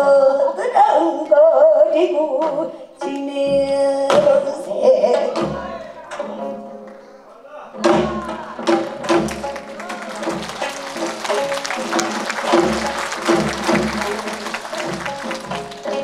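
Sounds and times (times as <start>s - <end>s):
plucked zithers playing: 7.8s - 16.0s.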